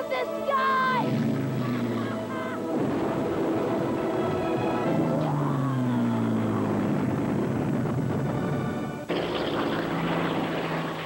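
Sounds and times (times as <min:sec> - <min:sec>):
propeller plane engine droning: 0:01.0 - 0:11.0.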